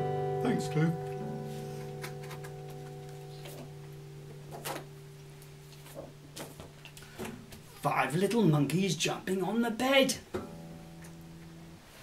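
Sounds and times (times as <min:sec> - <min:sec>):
acoustic guitar note plucked: 0:00.0 - 0:06.5, 0:10.3 - 0:11.8.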